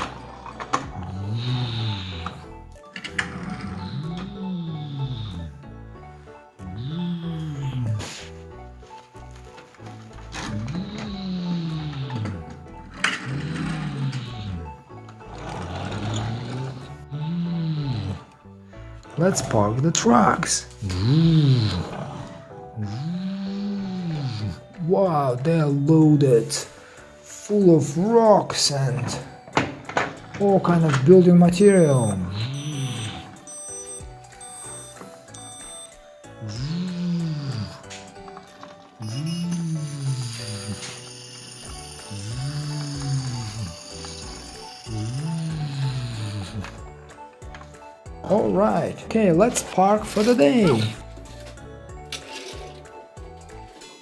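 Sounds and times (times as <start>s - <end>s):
background music: 0.0s - 54.0s
person imitating engine growl: 3.2s - 5.6s, 6.6s - 8.1s, 20.8s - 24.7s, 36.4s - 37.8s, 39.0s - 41.0s, 42.1s - 46.8s.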